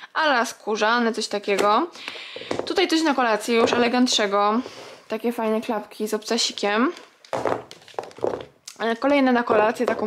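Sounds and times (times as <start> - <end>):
sandals knocking on wooden floor: 3.5 - 4.3, 7.3 - 8.5.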